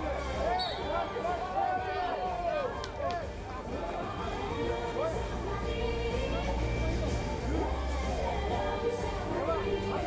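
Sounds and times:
crowd babble: 0.0s - 10.0s.

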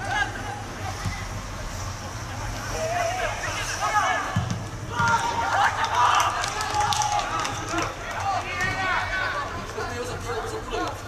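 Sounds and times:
outdoor background noise: 0.0s - 11.0s
men shouting: 2.8s - 10.9s.

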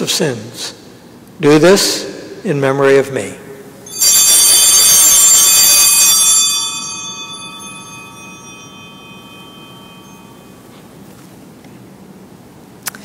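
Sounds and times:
altar bells ringing: 3.8s - 12.1s.

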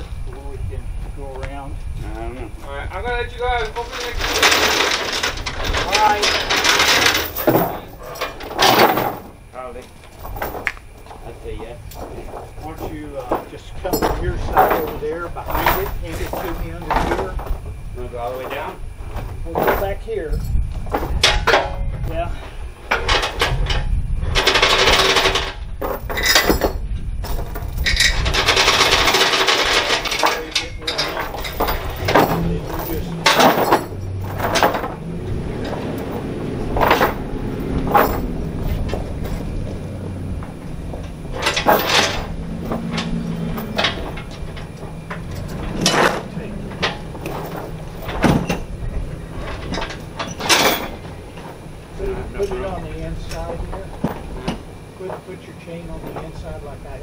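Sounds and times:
wind rumble on microphone: 0.0s - 8.5s, 9.2s - 54.9s
chains clanking and rattling: 0.0s - 57.0s.

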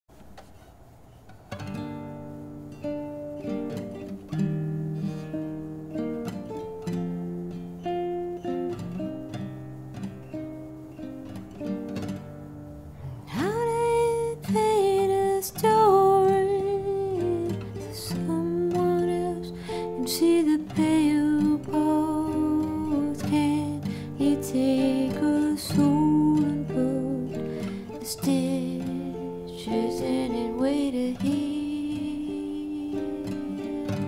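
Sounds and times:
acoustic guitar picking: 0.2s - 34.0s.

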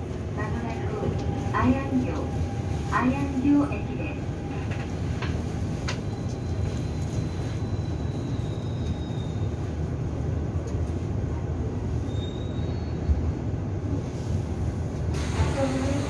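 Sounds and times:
train wheels rumbling on rail: 0.0s - 16.0s.

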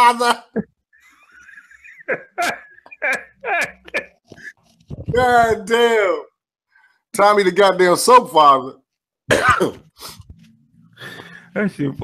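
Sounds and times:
man laughing: 0.3s - 4.5s.

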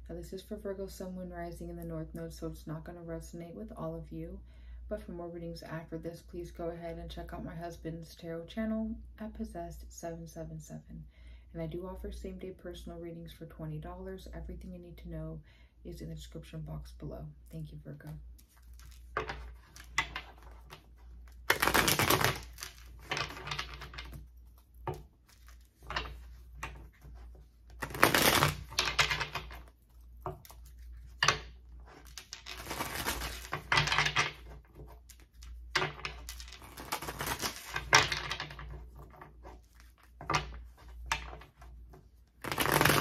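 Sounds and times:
cards being shuffled: 18.1s - 43.0s.

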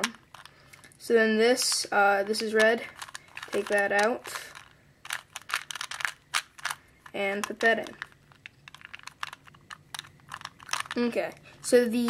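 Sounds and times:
puzzle cube clicking: 0.0s - 0.9s, 1.6s - 11.1s.

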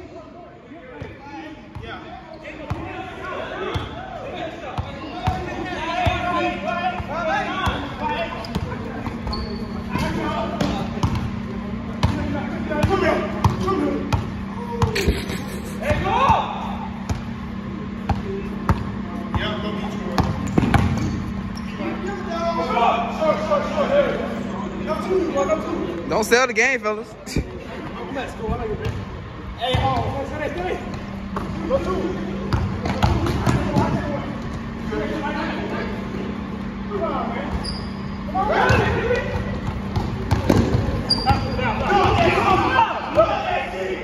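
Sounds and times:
players' voices: 0.0s - 44.0s
steady low hum: 5.4s - 43.2s.

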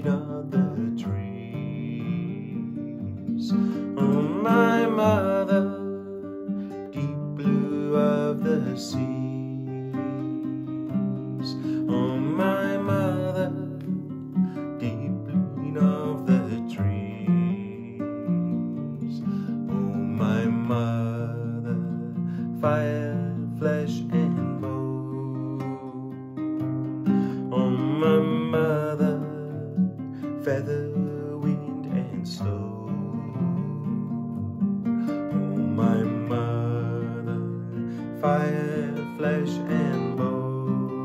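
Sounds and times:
man singing: 0.0s - 41.0s
strummed acoustic guitar: 0.0s - 41.0s.

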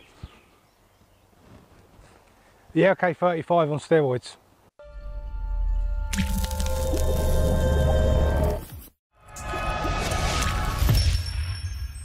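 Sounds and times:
liquid drop splat: 6.1s - 7.0s.

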